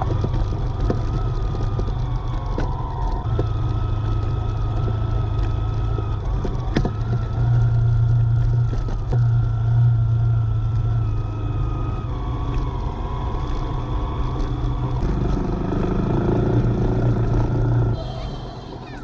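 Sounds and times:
vehicle engine running: 0:00.0 - 0:19.0
thin steady whine: 0:03.2 - 0:19.0.

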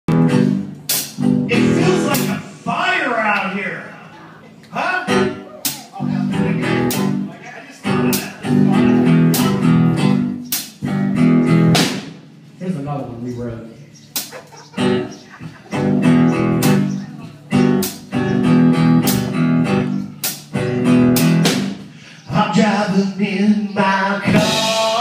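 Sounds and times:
live rock band playing: 0:00.1 - 0:12.6, 0:14.1 - 0:22.2, 0:24.2 - 0:25.0
drum and cymbal hits: 0:00.4 - 0:03.4, 0:11.7 - 0:12.2, 0:24.4 - 0:25.0.

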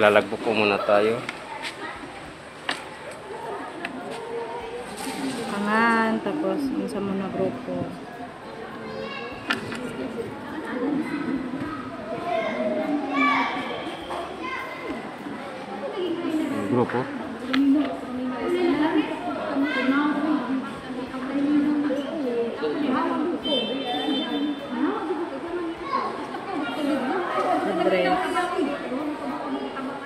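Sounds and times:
children chattering and calling: 0:00.0 - 0:30.0.

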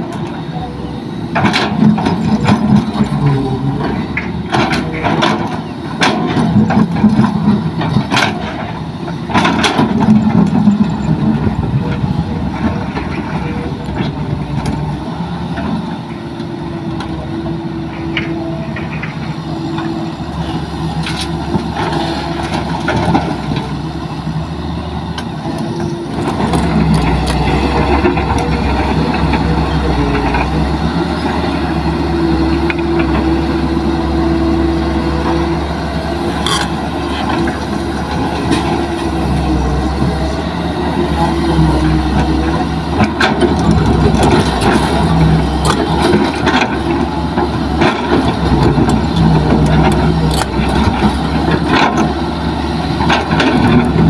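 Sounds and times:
excavator diesel engine and hydraulics: 0:00.0 - 0:54.0.

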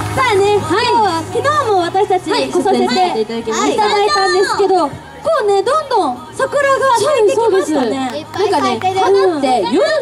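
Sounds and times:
girls talking into microphones: 0:00.1 - 0:10.0.

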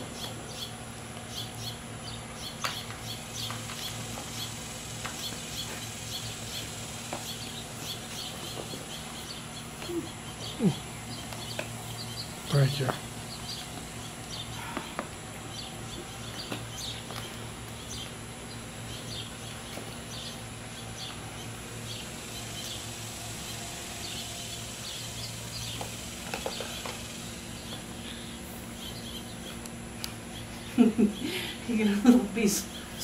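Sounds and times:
small birds chirping: 0:00.0 - 0:33.0
steady low hum: 0:00.0 - 0:33.0.

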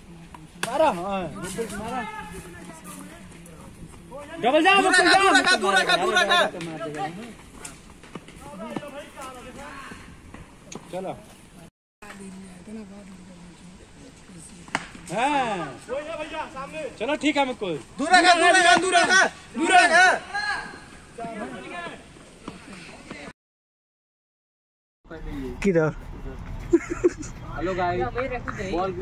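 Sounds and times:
young men shouting: 0:04.2 - 0:07.2, 0:18.0 - 0:22.0
cricket bat hitting ball: 0:14.7 - 0:15.0.

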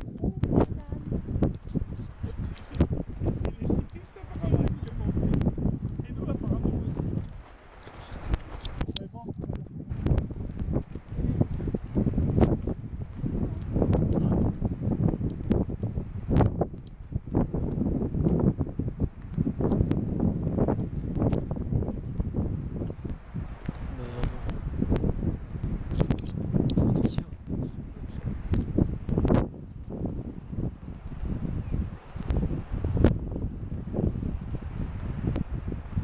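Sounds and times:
hooves clicking on rock: 0:00.0 - 0:33.8
wind buffeting microphone: 0:00.0 - 0:36.0.

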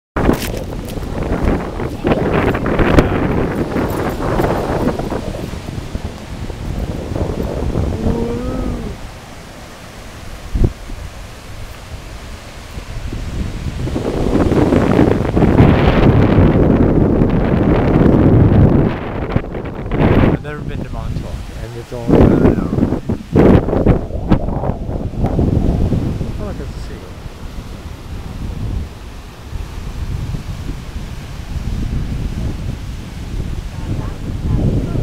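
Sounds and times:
wind buffeting microphone: 0:00.2 - 0:35.0.

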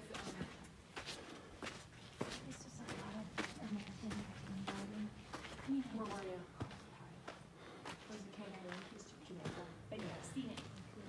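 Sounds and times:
footsteps on dirt: 0:00.0 - 0:11.0.

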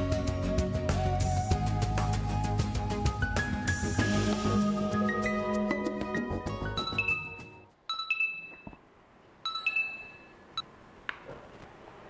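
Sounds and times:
phone ringtone chime: 0:06.8 - 0:08.8, 0:09.4 - 0:10.6.

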